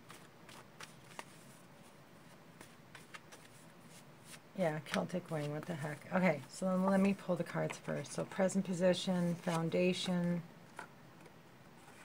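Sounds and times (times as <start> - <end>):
cards being shuffled by hand: 0.0 - 8.4, 9.2 - 10.9.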